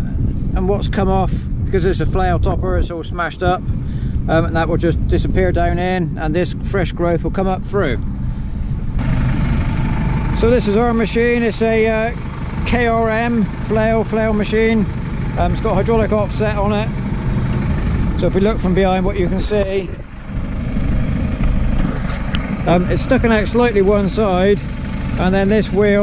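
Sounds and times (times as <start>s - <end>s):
wind rumbling on microphone: 0.0s - 26.0s
tractor engine idling: 3.2s - 26.0s.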